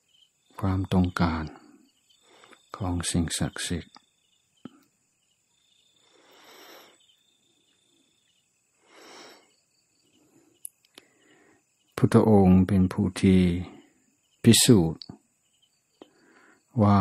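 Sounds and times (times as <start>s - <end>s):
crickets chirring: 0.0s - 17.0s
faint clicks: 10.6s - 11.1s.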